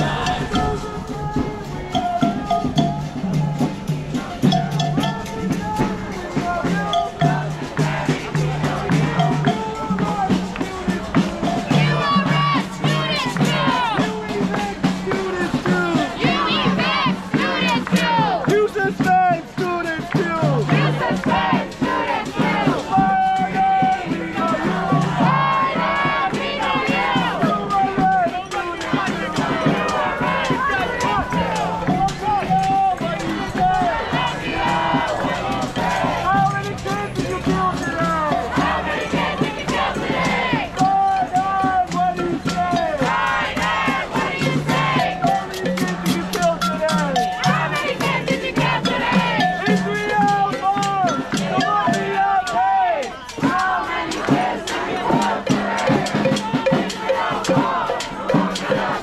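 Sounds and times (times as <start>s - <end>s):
crowd chanting in unison: 0.0s - 59.0s
rhythmic beats: 0.0s - 59.0s.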